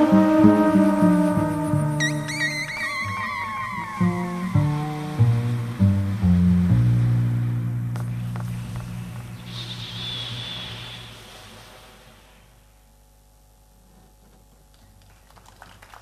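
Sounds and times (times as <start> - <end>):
high tones sliding downward: 0.0 - 6.5
electro-jazz trumpet and bass: 0.0 - 11.1.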